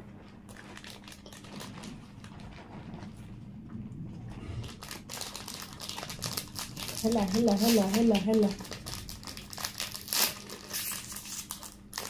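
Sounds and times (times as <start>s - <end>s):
food wrapper crinkling: 0.5s - 2.7s, 4.6s - 12.0s.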